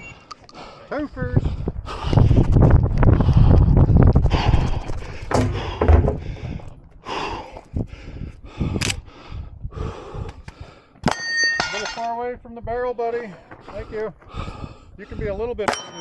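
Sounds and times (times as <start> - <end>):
wind rumbling on microphone: 1.0 - 10.8, 12.2 - 15.6.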